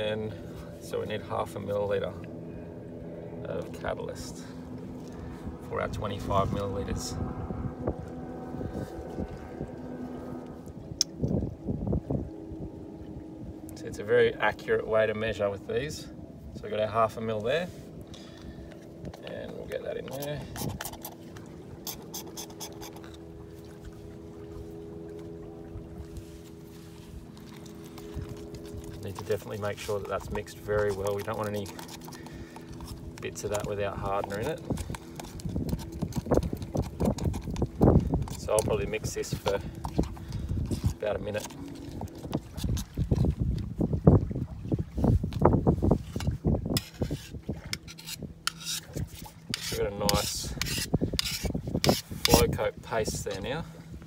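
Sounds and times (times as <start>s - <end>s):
low hum: 0.0s - 54.0s
scraper stirring paste in plastic cup: 20.1s - 21.2s, 21.8s - 23.2s, 28.6s - 42.9s, 46.8s - 52.5s.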